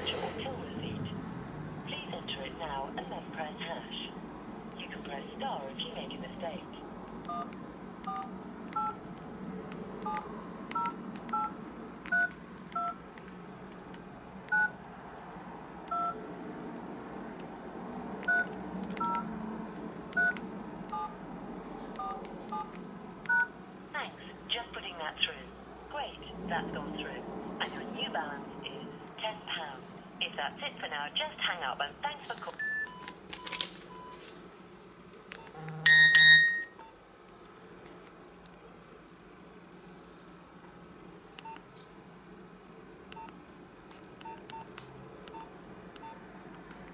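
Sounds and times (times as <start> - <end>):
phone keypad touch-tone beeps: 8.1 - 9.0, 12.1 - 13.0, 18.2 - 19.2, 20.2 - 21.1, 22.0 - 22.7, 32.6 - 34.2, 35.4 - 36.9, 44.2 - 44.7
phone chiming alert: 35.8 - 36.8.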